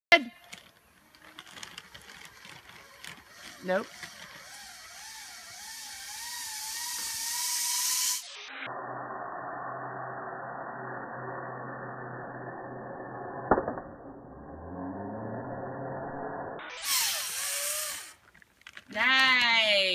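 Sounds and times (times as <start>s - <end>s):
zipline pulley whining on cable: 0.4s - 18.4s.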